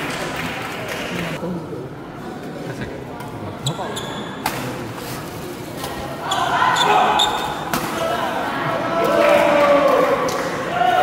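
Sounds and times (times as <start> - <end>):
crowd voices: 0.0 - 11.0
court shoes squeaking: 3.6 - 4.7, 6.3 - 8.1.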